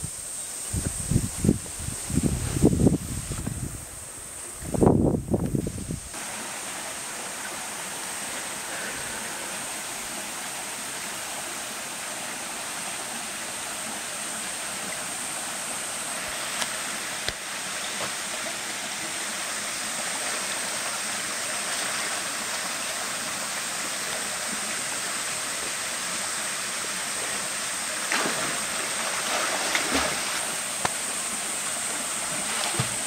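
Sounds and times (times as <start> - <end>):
river rushing over rocks: 6.1 - 33.0.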